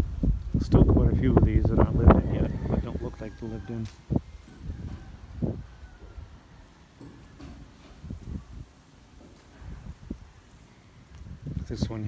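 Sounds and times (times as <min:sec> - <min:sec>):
wind buffeting microphone: 0:00.0 - 0:12.0
soft low thuds from walking: 0:07.0 - 0:10.4, 0:11.0 - 0:12.0.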